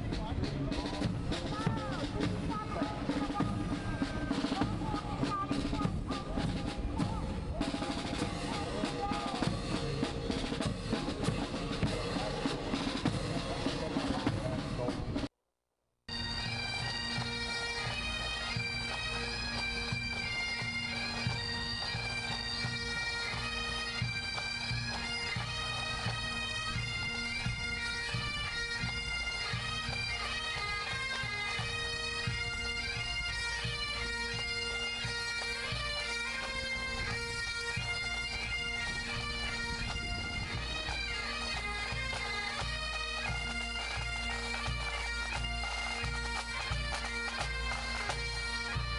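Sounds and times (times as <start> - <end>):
bagpipes with drones: 0.0 - 15.2, 16.1 - 48.9
marching band brass and drums: 0.0 - 15.3, 16.1 - 48.9
pipe band drums: 0.0 - 15.3, 16.1 - 48.9.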